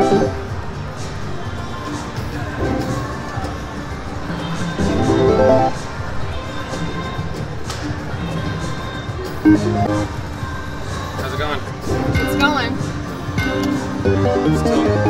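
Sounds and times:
slot machine music and jingles: 0:00.0 - 0:00.4, 0:04.8 - 0:05.8, 0:09.4 - 0:10.1, 0:11.8 - 0:15.0
murmur of crowd: 0:00.0 - 0:15.0.

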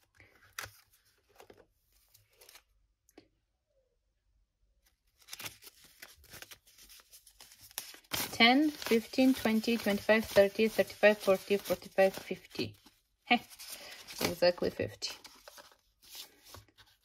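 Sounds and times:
banknotes rustling: 0:05.1 - 0:17.0.

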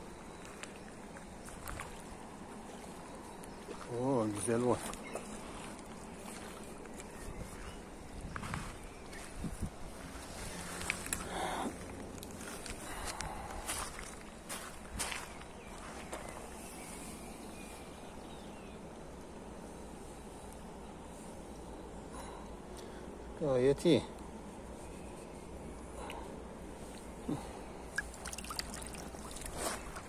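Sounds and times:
stony river running: 0:27.2 - 0:30.0
fish splashing: 0:27.9 - 0:30.0.

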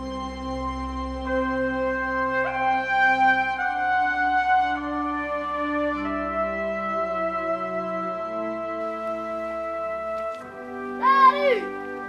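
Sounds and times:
soft slow background music: 0:00.0 - 0:12.0.

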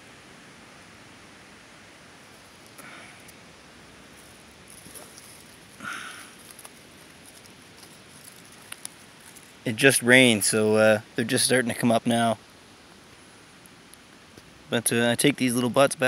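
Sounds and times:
outdoor hiss: 0:00.0 - 0:16.0
soft breaths: 0:02.6 - 0:09.6
rustling and handling noise: 0:04.1 - 0:09.9.

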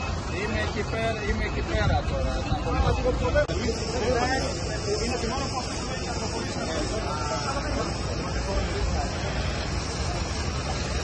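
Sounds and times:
faint people talking: 0:00.0 - 0:11.0
road traffic rushing: 0:00.0 - 0:11.0.

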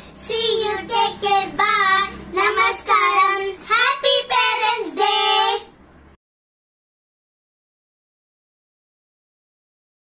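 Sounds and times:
child singing: 0:00.2 - 0:05.7.

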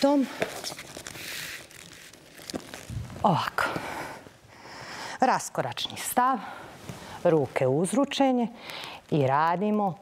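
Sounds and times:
clothing rustle: 0:00.2 - 0:03.4.

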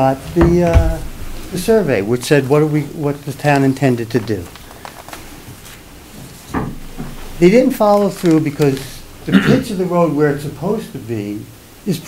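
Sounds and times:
papers rustling: 0:02.4 - 0:09.2.

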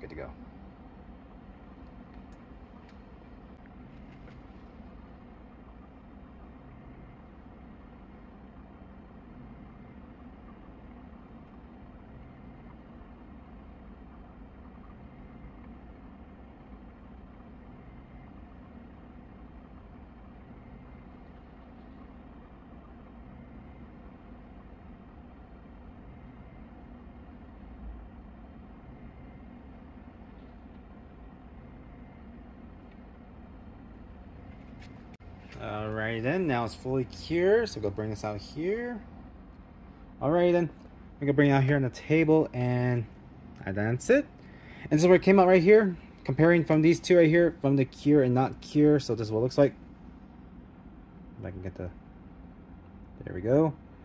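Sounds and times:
turntable motor humming: 0:00.0 - 0:54.0.

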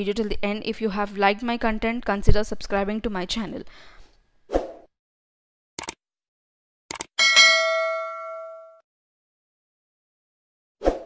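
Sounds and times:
quick click: 0:06.9 - 0:07.1
bell ding: 0:07.2 - 0:08.8.

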